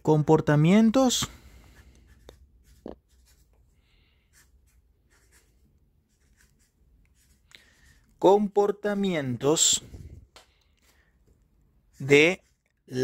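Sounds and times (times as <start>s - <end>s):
marker scratching on paper: 1.3s - 9.6s, 10.8s - 13.0s.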